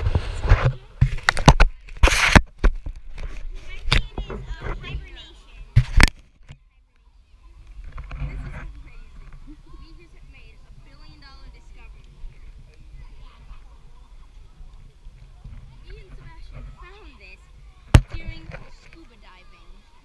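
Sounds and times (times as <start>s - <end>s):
children talking and calling: 0.3s - 2.3s, 3.2s - 20.0s.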